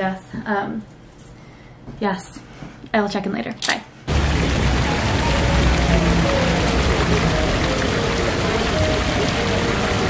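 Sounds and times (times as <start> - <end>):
fountain water splashing: 4.1 - 10.0
soft music: 4.5 - 10.0.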